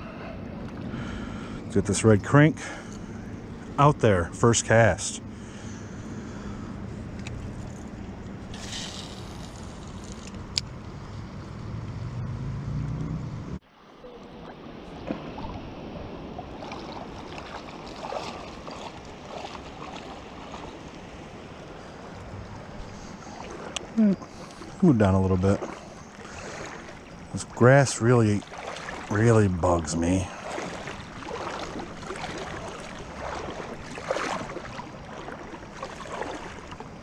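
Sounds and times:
river water: 0:00.0 - 0:37.0
water sloshing and splashing: 0:05.4 - 0:10.8, 0:13.7 - 0:37.0
wind rumbling on microphone: 0:28.4 - 0:37.0.

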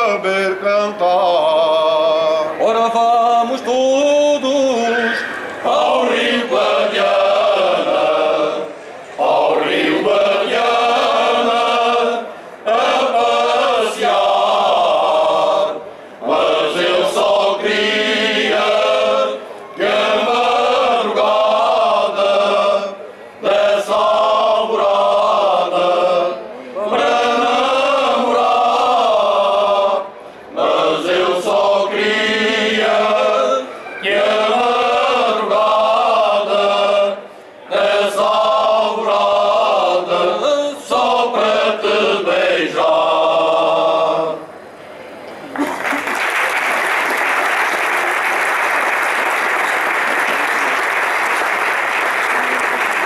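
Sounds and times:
men's choir singing: 0:00.0 - 0:44.5.

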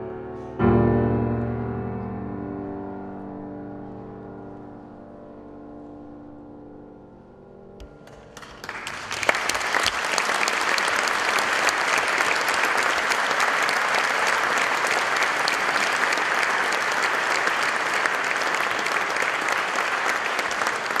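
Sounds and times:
audience applause: 0:08.0 - 0:21.0.

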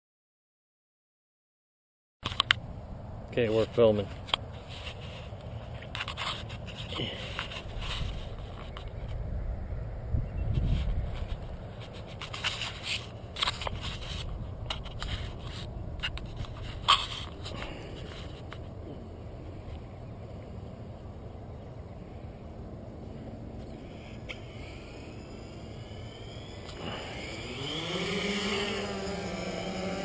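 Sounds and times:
camera handling rubbing and scraping: 0:02.2 - 0:02.6, 0:04.1 - 0:09.2, 0:10.5 - 0:18.7
wind rumble on microphone: 0:06.5 - 0:27.6.

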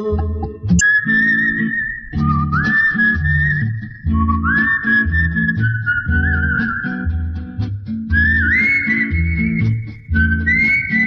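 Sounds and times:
plucked string accompaniment: 0:00.0 - 0:11.0
whistled melody: 0:00.8 - 0:11.0.

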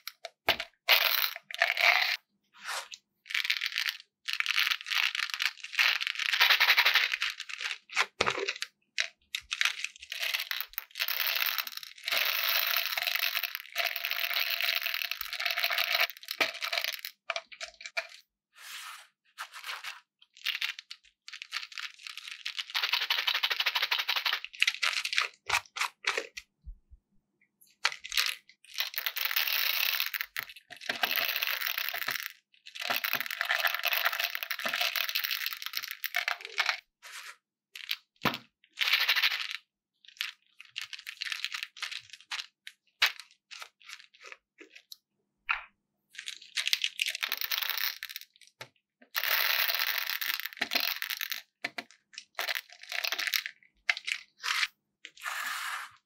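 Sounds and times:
candy balls pouring and rattling: 0:00.0 - 0:02.2, 0:03.3 - 0:26.4, 0:27.8 - 0:38.1, 0:38.7 - 0:44.8, 0:46.2 - 0:56.0.

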